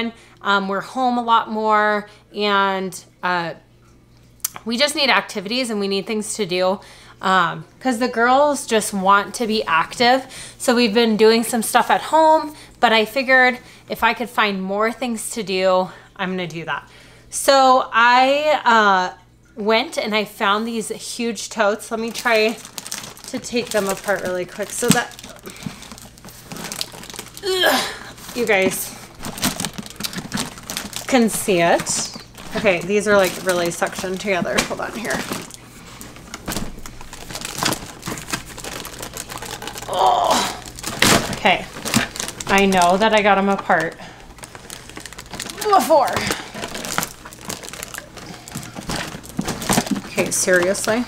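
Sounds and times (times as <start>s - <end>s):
plastic rustling and crinkling: 21.6s - 51.0s.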